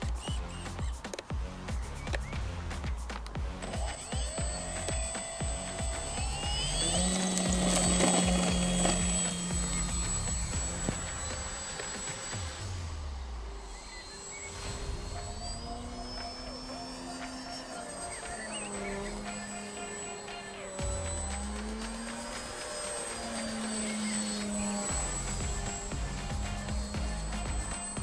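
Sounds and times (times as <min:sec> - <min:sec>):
model plane motor whining: 0:00.0 - 0:28.0
music: 0:00.0 - 0:28.0.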